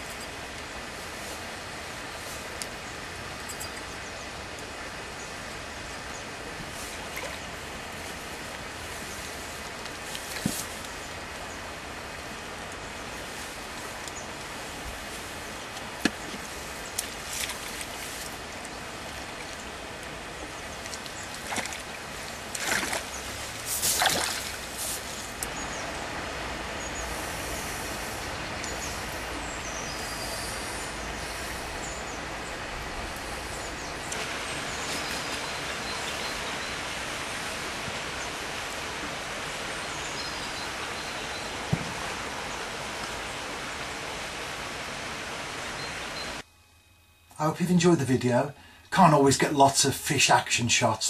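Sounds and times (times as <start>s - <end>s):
fish splashing at the surface: 20.8s - 25.0s
steady rushing noise: 21.8s - 46.4s.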